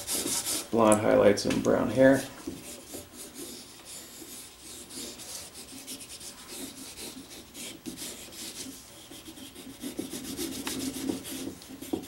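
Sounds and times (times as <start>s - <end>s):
pencils scratching on paper: 0.0s - 0.7s, 2.5s - 12.0s.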